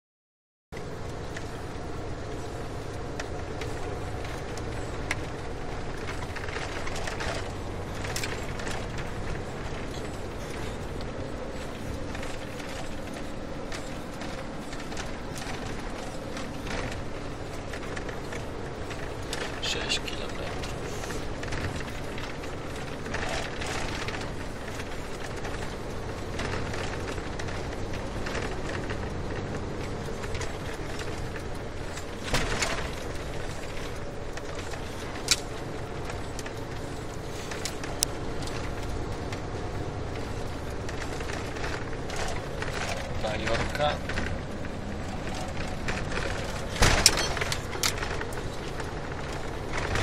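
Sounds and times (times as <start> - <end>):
car engine and road noise: 0.7 - 50.0.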